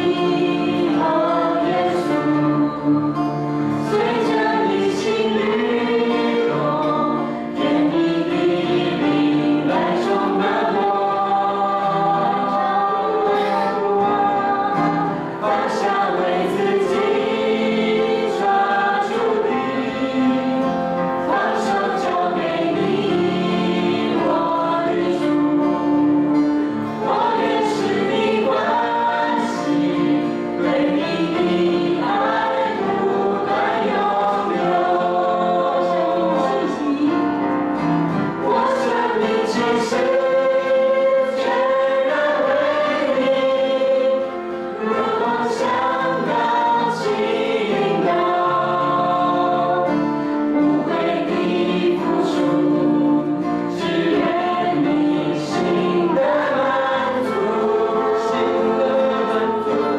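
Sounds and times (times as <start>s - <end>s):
group singing through microphones: 0.0s - 59.9s
strummed acoustic guitar: 0.0s - 59.9s.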